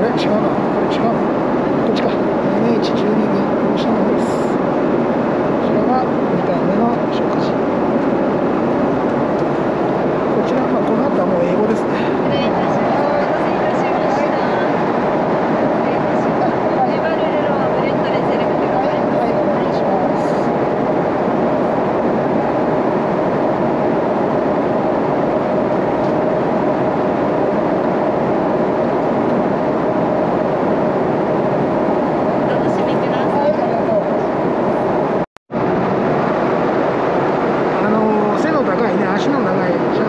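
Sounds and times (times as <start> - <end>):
airliner cabin engine noise: 0.0 - 40.0.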